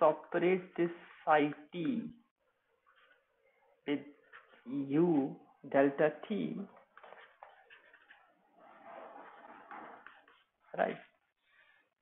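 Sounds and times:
lecturer speaking: 0:00.0 - 0:02.2, 0:03.9 - 0:06.8, 0:10.7 - 0:11.1.

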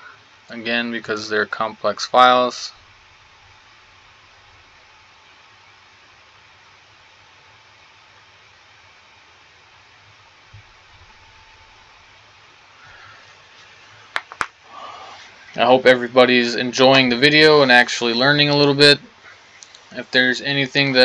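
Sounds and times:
faint room tone hiss: 0:00.0 - 0:21.0.

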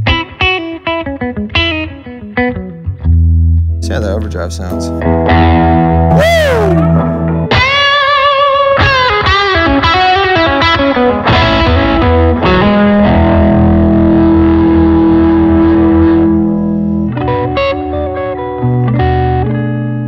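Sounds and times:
distorted electric guitar: 0:04.8 - 0:20.0.

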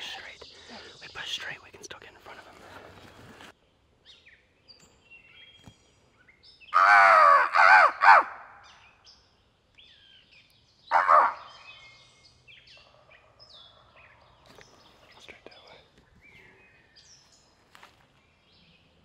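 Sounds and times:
faint birds: 0:00.0 - 0:19.0
crow cawing: 0:06.8 - 0:08.6, 0:10.9 - 0:11.5.

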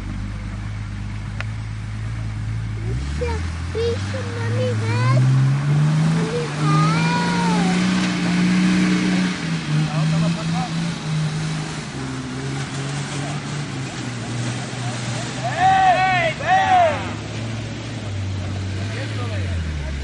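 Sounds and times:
off-road vehicle engine revving: 0:00.0 - 0:20.0.

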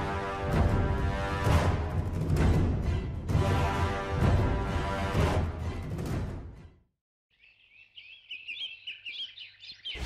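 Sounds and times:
small birds chirping: 0:07.3 - 0:10.0.

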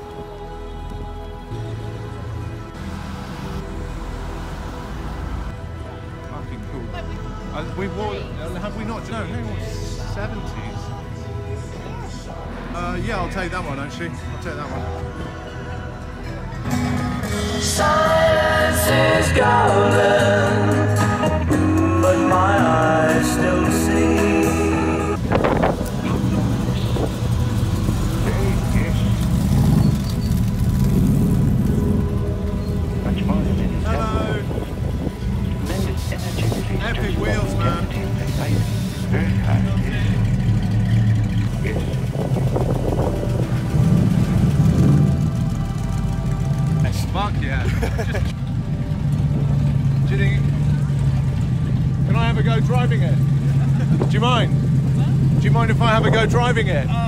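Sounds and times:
background music: 0:00.0 - 0:57.0
car engine running: 0:22.6 - 0:57.0
people talking: 0:28.1 - 0:29.2, 0:33.0 - 0:34.7, 0:35.6 - 0:40.6, 0:41.4 - 0:42.2, 0:46.8 - 0:48.3, 0:50.0 - 0:57.0.

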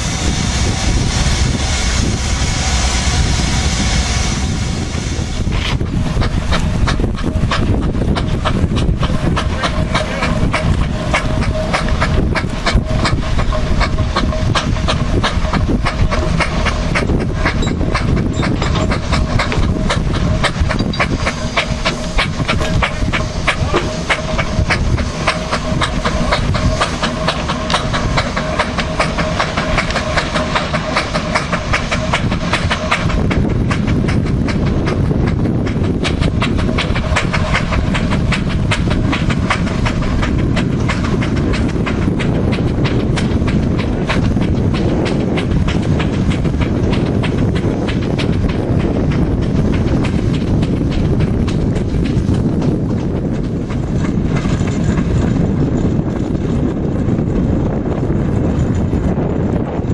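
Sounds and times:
low rumble: 0:00.0 - 0:59.9
steam engine exhaust beating: 0:00.0 - 0:59.9.

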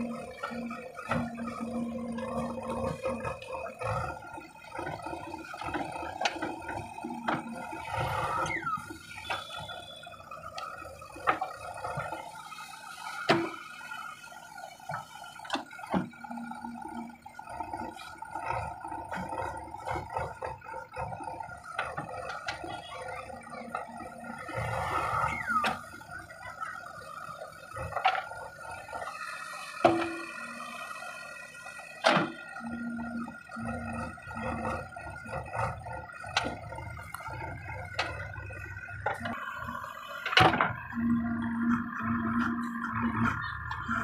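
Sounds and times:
diesel engine under load: 0:00.0 - 0:44.0.

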